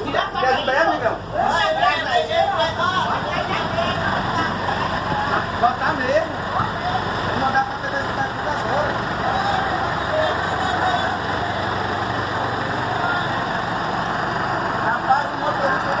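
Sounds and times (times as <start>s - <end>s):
bus diesel engine running: 0.0s - 16.0s
voices chattering: 0.0s - 16.0s.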